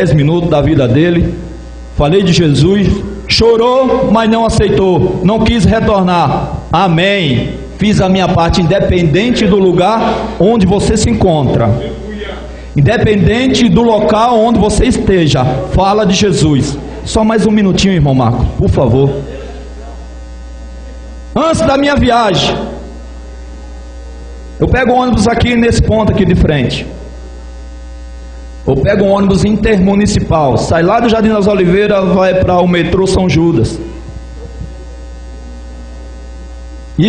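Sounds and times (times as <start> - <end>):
man's amplified voice: 0.0 - 20.1, 20.9 - 22.9, 24.6 - 27.1, 28.6 - 34.1
electrical mains hum: 0.0 - 37.0.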